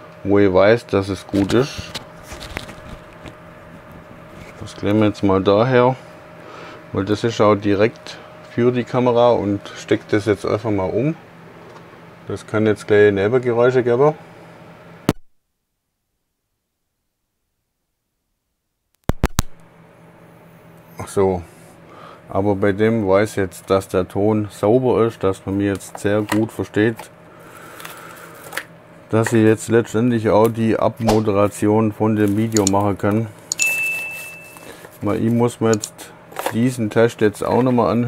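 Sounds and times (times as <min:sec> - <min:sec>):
faint steady microphone hum: 0:00.0 - 0:15.1, 0:19.2 - 0:38.0.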